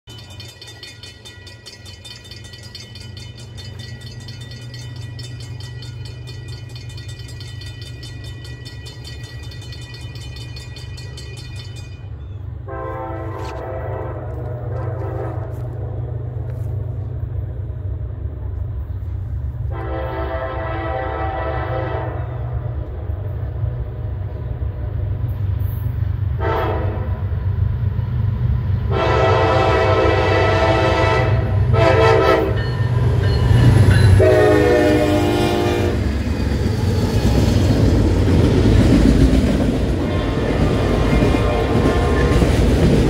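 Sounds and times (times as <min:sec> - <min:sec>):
crossing warning bell ringing: 0:00.0 - 0:12.8, 0:28.9 - 0:43.0
locomotive engine rumble: 0:00.1 - 0:43.0
locomotive air horn blast: 0:12.7 - 0:15.8, 0:19.7 - 0:22.4, 0:26.4 - 0:27.3, 0:28.9 - 0:32.6, 0:34.2 - 0:36.0, 0:40.0 - 0:42.6.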